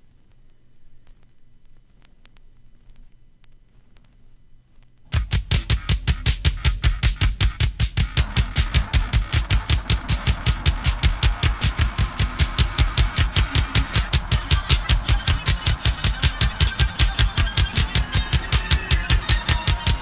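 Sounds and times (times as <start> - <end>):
fast low thumps: 5.1 - 20.0
post-punk band music: 5.1 - 20.0.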